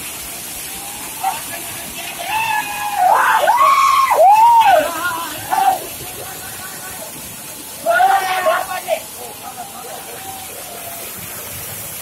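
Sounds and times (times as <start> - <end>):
water rushing and splashing: 0.0 - 12.0
men shouting long calls: 2.2 - 6.6, 7.8 - 10.8.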